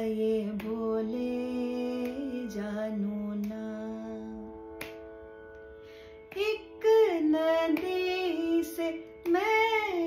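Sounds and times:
woman singing slow melody: 0.0s - 5.1s, 6.0s - 10.0s
shruti box drone: 0.0s - 10.0s.

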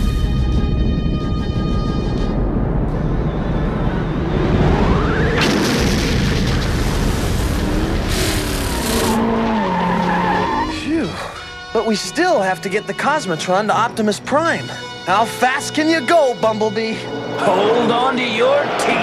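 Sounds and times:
steady rumbling noise: 0.0s - 9.2s
rising whoosh: 2.2s - 9.4s
bursts of hiss: 6.9s - 9.2s.

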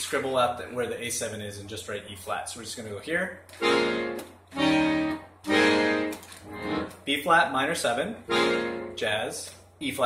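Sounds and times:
accordion playing held chords: 3.6s - 7.1s, 8.2s - 9.1s.

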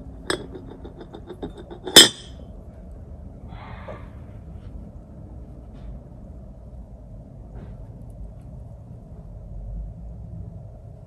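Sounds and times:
paintbrush clinking ceramic dish: 0.3s - 2.3s.

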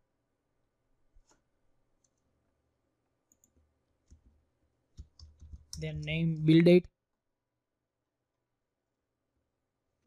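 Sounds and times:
computer mouse clicks: 2.0s - 2.3s, 3.3s - 4.4s, 5.0s - 6.0s.

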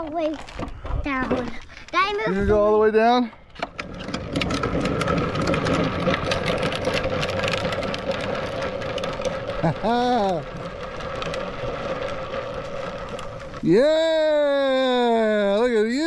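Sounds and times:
plastic wheels rattling on asphalt: 0.0s - 16.0s.

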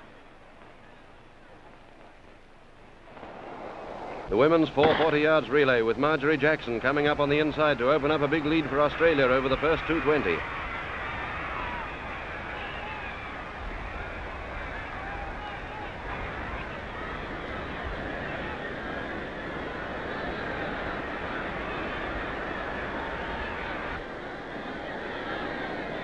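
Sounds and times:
stadium crowd cheering and shouting: 3.2s - 26.0s.

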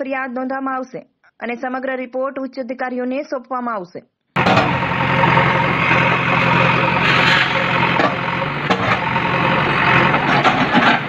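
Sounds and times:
diesel engine running: 4.4s - 11.0s
masonry knocks and crashes: 4.4s - 11.0s.

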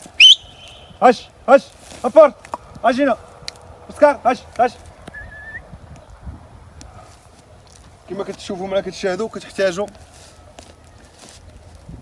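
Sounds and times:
short high whistle: 0.2s - 0.9s, 5.1s - 5.7s.

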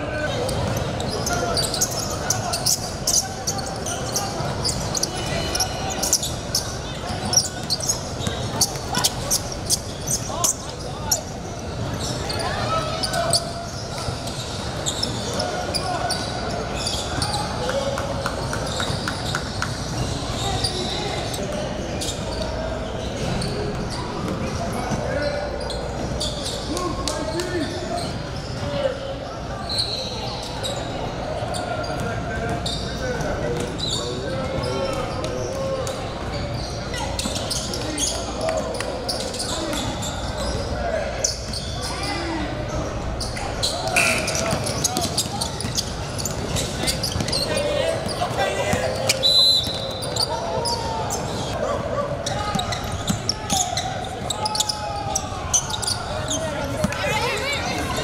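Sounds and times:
sneakers squeaking: 0.0s - 58.0s
players and spectators shouting: 36.6s - 58.0s.

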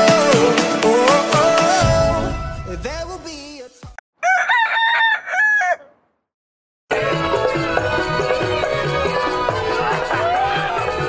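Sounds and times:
song: 0.0s - 3.6s
rooster crowing: 4.2s - 6.1s.

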